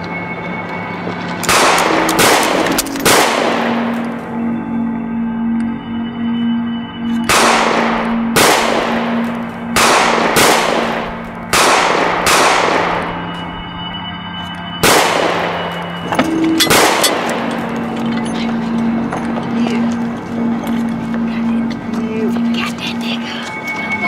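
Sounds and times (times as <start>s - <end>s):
background music: 0.0s - 24.0s
echoing gunshots: 1.4s - 4.4s, 7.2s - 13.3s, 14.8s - 16.0s, 16.6s - 17.9s.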